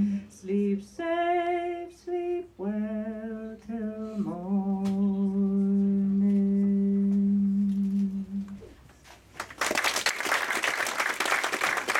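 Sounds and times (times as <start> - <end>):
audience applause: 9.4 - 11.9.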